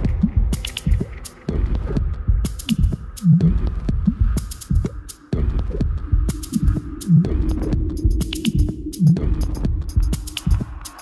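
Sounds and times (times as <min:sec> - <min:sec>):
deep tech dance music: 0:00.0 - 0:11.0.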